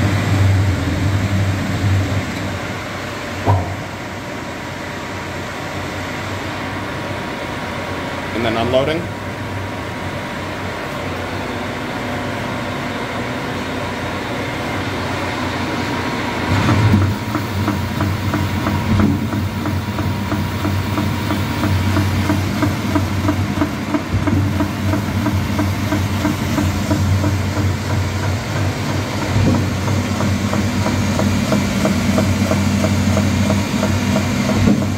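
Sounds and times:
spinning disc rhythmic pulsing hum: 14.7 - 34.9
bowl cutter running: 14.9 - 34.9.

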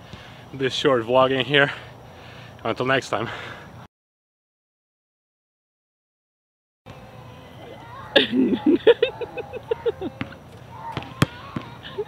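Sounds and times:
basketball bouncing on hard court: 10.9 - 11.8.

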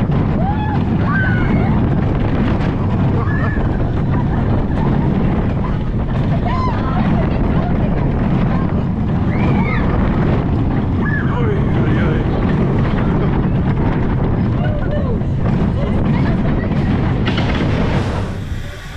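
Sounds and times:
roller coaster wheels rumbling: 0.0 - 18.9
wind buffeting microphone: 0.0 - 18.9.

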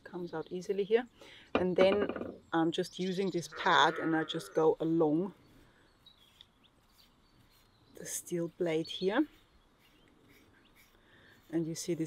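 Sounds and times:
faint bird chirps: 4.3 - 11.6.

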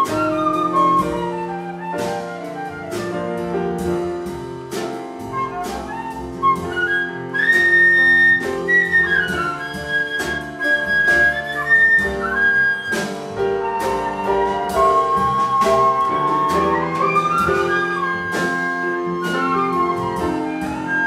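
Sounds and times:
flute melody: 0.0 - 4.2, 5.2 - 21.0
piano chords: 0.0 - 21.0
upright bass: 0.0 - 21.0.

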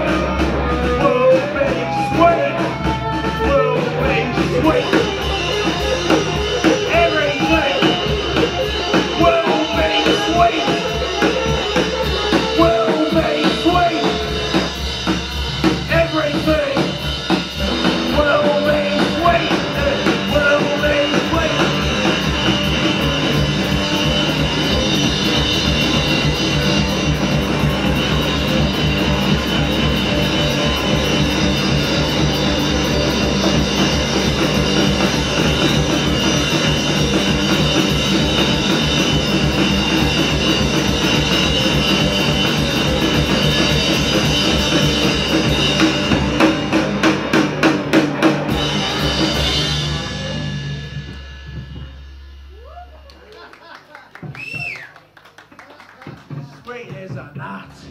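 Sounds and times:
hard drum strokes: 0.0 - 52.8
live rock band playing: 0.0 - 57.8.

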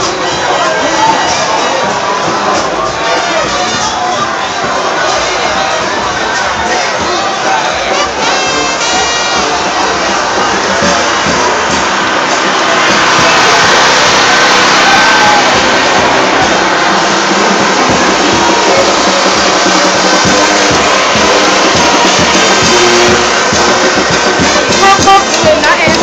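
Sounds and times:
brass band playing: 0.0 - 26.0
steady drum beat: 0.0 - 26.0
street crowd talking and shouting: 0.0 - 26.0.

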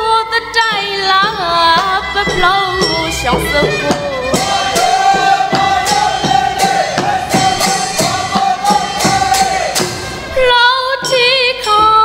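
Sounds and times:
backing band with drumbeat: 0.6 - 11.3.

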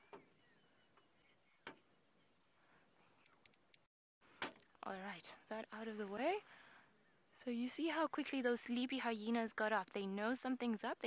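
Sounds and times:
faint clicks and ticks: 3.2 - 4.8.

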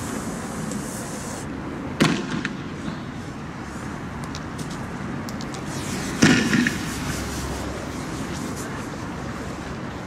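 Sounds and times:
outdoor background noise: 0.0 - 10.0
sharp loud bang: 6.2 - 6.9.

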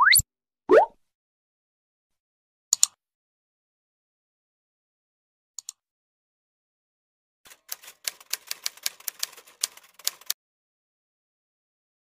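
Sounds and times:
typewriter keystroke clicks: 7.5 - 10.4.

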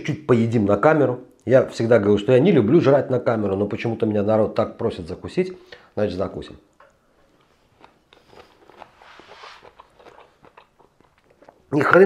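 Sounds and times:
man chewing crunchy salad: 6.8 - 11.8.

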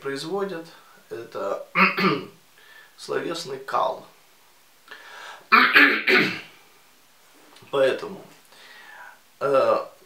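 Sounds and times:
man clearing his throat: 1.8 - 2.4, 5.5 - 6.6.

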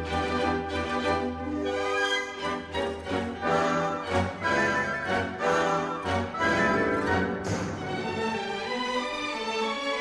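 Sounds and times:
orchestra playing ballet music: 0.0 - 10.0.

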